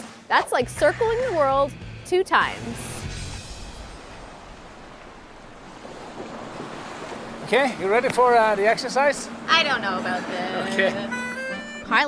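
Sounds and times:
open sea water: 0:00.0 - 0:12.0
wind rushing: 0:02.5 - 0:08.6.

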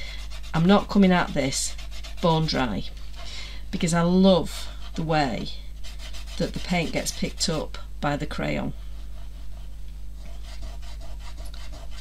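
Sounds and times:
crayon scratching on board: 0:00.2 - 0:02.8, 0:04.9 - 0:07.7, 0:09.2 - 0:12.0.

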